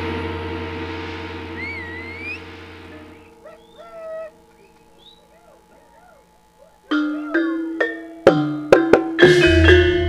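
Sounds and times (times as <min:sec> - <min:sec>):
wavering sliding high tones: 0:00.0 - 0:07.9
gamelan ensemble playing: 0:00.0 - 0:10.0
gong ringing: 0:00.0 - 0:10.0.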